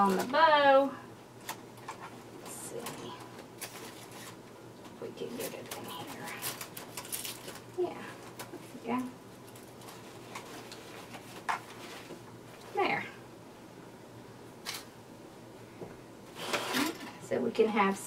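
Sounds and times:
ribbon and greenery rustling: 0.0 - 0.4.

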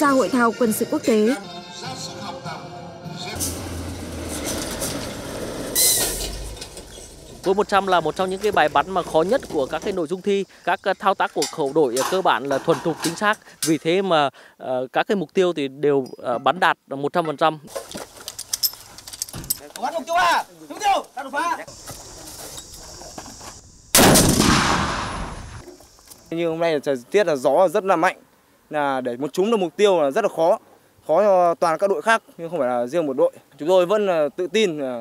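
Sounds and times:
truck engine and road noise: 3.2 - 10.1
metallic clicks and clinks: 18.2 - 19.8.

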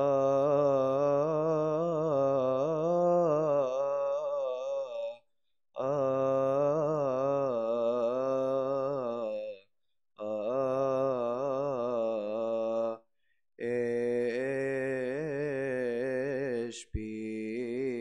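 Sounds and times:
man chanting a hymn: 13.6 - 18.0.

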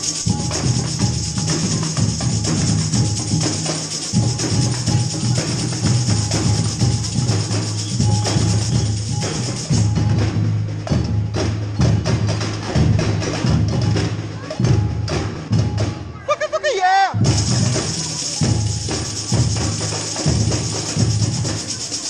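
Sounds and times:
percussion band funk groove: 0.0 - 22.0
tambourines and shakers: 0.0 - 22.0.

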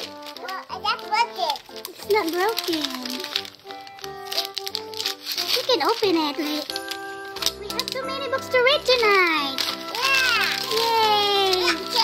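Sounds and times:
background music with held notes: 0.0 - 12.0
wrapping paper crinkling: 0.0 - 12.0.

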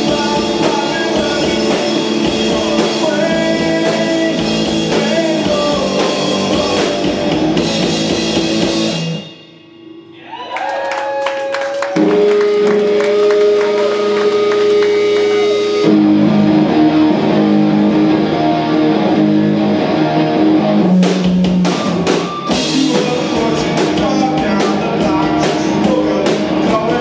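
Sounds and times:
live rock band playing: 0.0 - 10.2, 11.2 - 27.0
electric guitar bending notes: 11.9 - 27.0.

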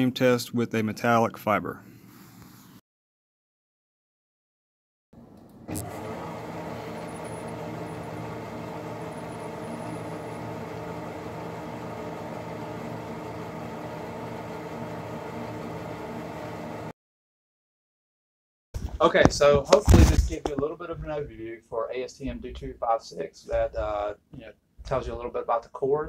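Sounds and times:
mechanical drive hum: 5.2 - 16.9.

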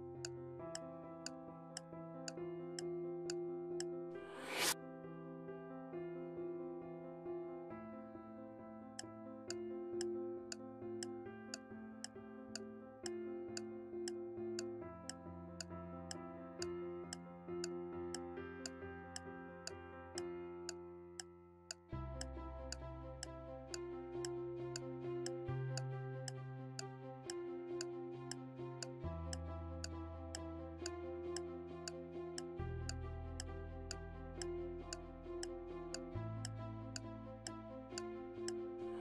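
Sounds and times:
suspenseful background music: 27.8 - 39.0.

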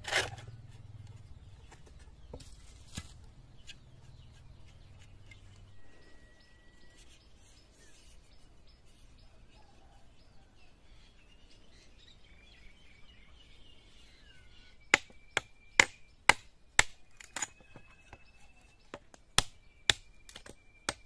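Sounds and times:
bird chirps: 0.4 - 16.3, 17.0 - 21.0
knife chopping bamboo: 14.9 - 17.8, 18.9 - 21.0.

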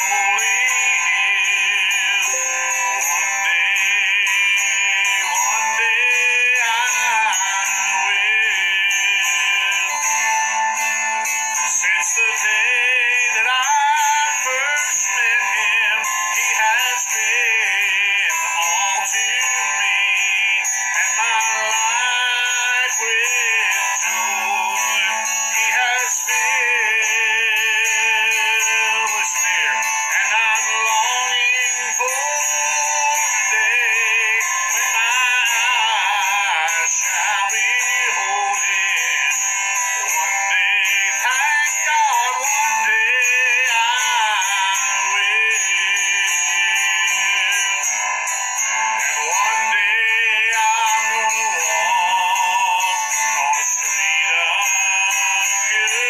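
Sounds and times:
man singing with vibrato: 0.0 - 56.0.

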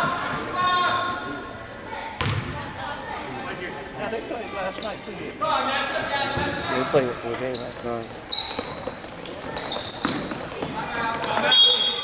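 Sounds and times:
basketball bouncing: 2.2 - 2.5, 8.5 - 10.8
sneakers squeaking on court: 7.5 - 12.0.

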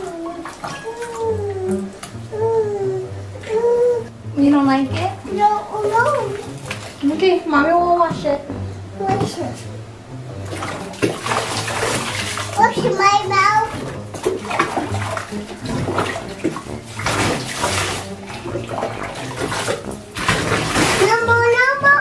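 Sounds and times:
tap water rushing into bathtub: 0.0 - 2.4, 4.6 - 8.4, 10.4 - 22.0
toddler babbling: 0.0 - 4.1, 5.4 - 6.4, 9.0 - 9.4, 12.6 - 13.8.

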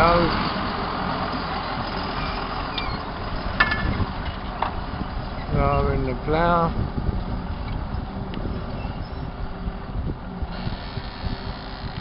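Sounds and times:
tractor diesel engine under load: 0.0 - 12.0.

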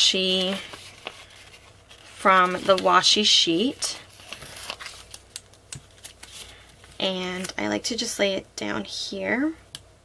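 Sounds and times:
paper sticker sheet rustling: 0.0 - 7.7.

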